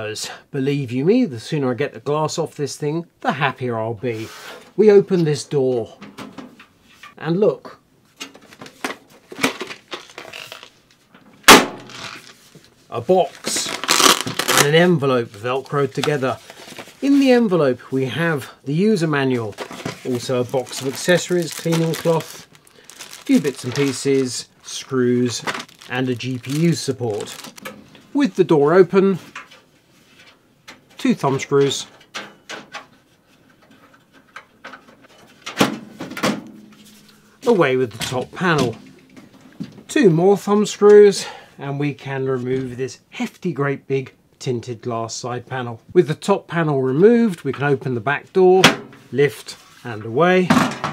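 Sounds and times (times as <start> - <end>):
cardboard box rustling: 19.5 - 27.6.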